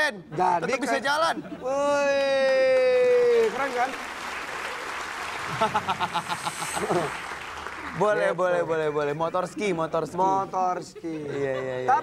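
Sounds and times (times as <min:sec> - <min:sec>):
audience applause: 0:02.4 - 0:09.0
audience laughter: 0:05.4 - 0:08.0.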